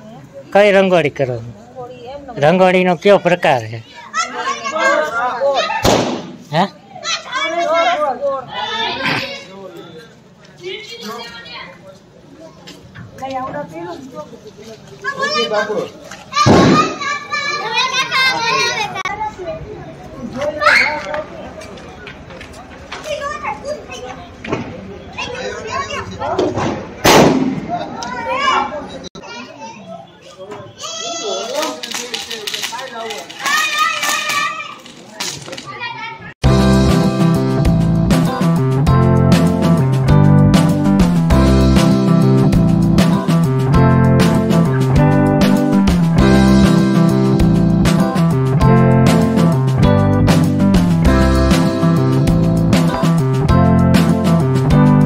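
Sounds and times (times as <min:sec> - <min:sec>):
women and child talking: 0:03.8 - 0:05.9, 0:10.6 - 0:14.3, 0:14.9 - 0:21.2, 0:22.9 - 0:24.4, 0:25.1 - 0:26.6
children shouting: 0:04.0 - 0:05.9, 0:06.9 - 0:09.6, 0:15.0 - 0:19.1, 0:20.5 - 0:21.1, 0:30.6 - 0:31.8, 0:33.4 - 0:34.8
firecracker crackling: 0:05.8 - 0:06.6, 0:31.5 - 0:35.6.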